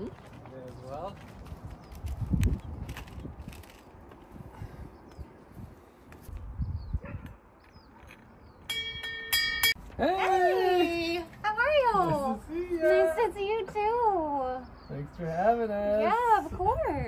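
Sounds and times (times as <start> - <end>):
footsteps: 0.0 - 4.4
brass door bell ringing: 8.7 - 9.8.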